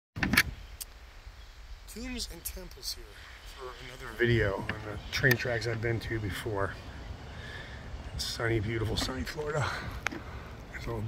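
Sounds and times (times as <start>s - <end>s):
wind rumble on microphone: 4.1s - 11.0s.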